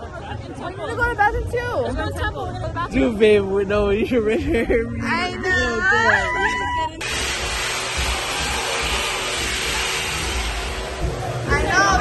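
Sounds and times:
hand dryer blowing: 0:07.0 - 0:12.0.

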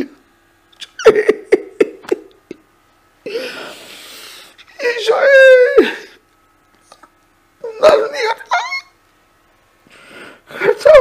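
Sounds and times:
man praying emotionally: 0:04.7 - 0:06.1, 0:07.6 - 0:08.9, 0:10.5 - 0:11.0.

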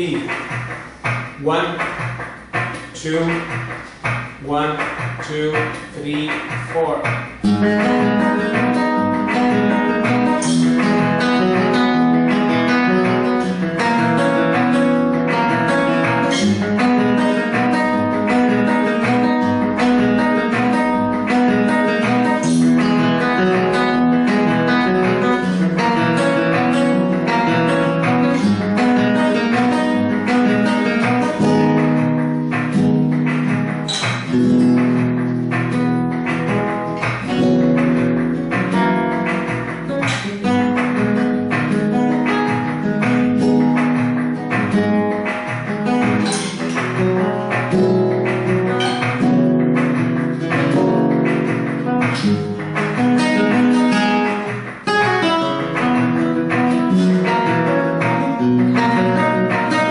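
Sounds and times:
flamenco guitar strumming: 0:00.0 - 0:59.9.

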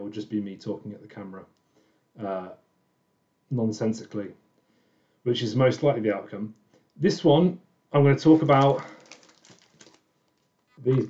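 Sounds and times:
record sleeve rustling: 0:08.2 - 0:11.0.

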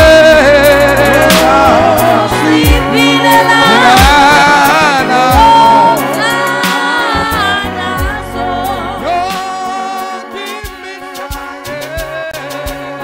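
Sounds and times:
instrumental backing: 0:00.0 - 0:13.0
man singing gospel: 0:00.0 - 0:13.0.

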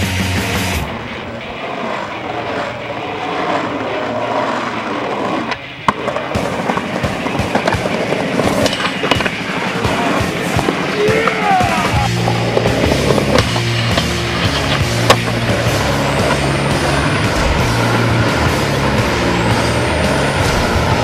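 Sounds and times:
skateboard clack: 0:00.0 - 0:21.0
skateboard wheels rolling on pavement: 0:00.0 - 0:21.0
skateboard clicks and knocks: 0:01.0 - 0:21.0.

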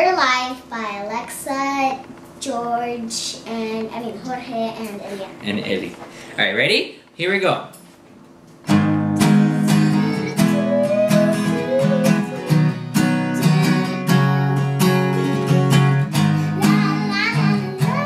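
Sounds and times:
acoustic guitar strumming: 0:08.6 - 0:18.0
child singing: 0:09.7 - 0:12.5, 0:13.4 - 0:14.4, 0:16.4 - 0:18.0.

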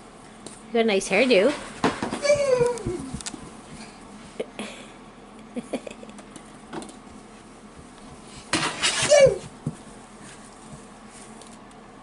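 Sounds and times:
toddler exclaiming: 0:02.2 - 0:03.1, 0:09.1 - 0:09.5.

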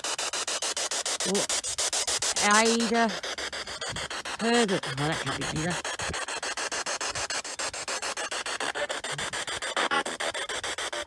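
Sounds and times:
pulsing radio static: 0:00.0 - 0:11.0
snatch of radio sound: 0:00.0 - 0:11.0.

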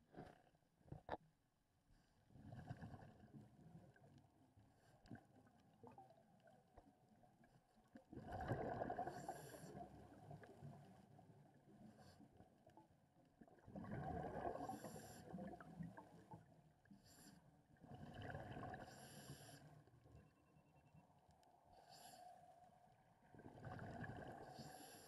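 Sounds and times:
regulator bubbling underwater: 0:08.2 - 0:10.5, 0:13.6 - 0:14.8
underwater hiss: 0:09.1 - 0:09.8, 0:14.6 - 0:15.4, 0:18.8 - 0:19.7, 0:24.5 - 0:25.0.

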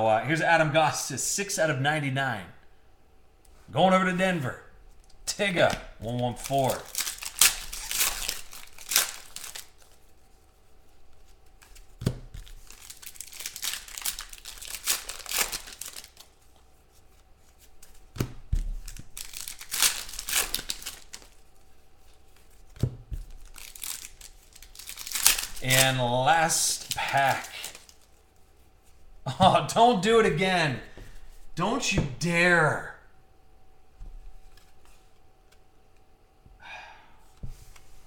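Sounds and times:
foil wrappers tearing and crinkling: 0:06.2 - 0:10.1, 0:11.4 - 0:16.6, 0:18.8 - 0:21.6, 0:22.5 - 0:28.2.

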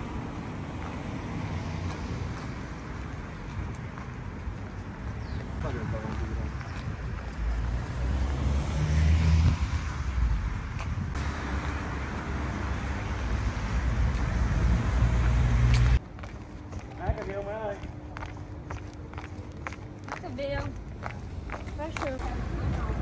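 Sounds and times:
wind buffeting microphone: 0:05.1 - 0:08.2, 0:09.3 - 0:11.3
light footsteps: 0:13.6 - 0:23.0.

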